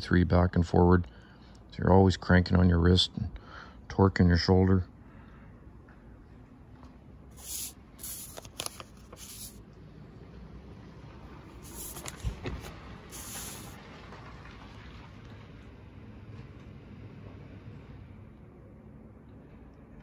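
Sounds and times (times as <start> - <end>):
paper pages rustling: 7.4 - 9.6, 11.6 - 13.8.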